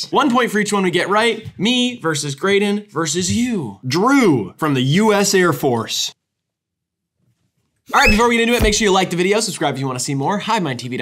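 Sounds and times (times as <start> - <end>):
man speaking: 7.9 - 11.0.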